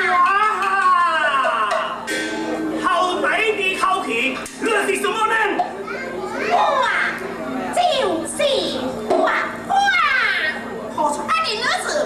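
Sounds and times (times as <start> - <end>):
high-pitched stylised stage speech: 2.8 - 12.0.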